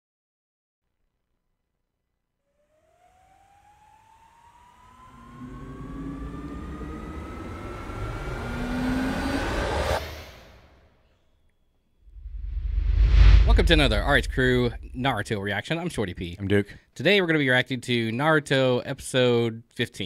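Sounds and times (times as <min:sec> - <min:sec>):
rising riser sound effect: 0:04.6 - 0:10.6, 0:12.1 - 0:15.2
deep rumble: 0:12.1 - 0:15.3.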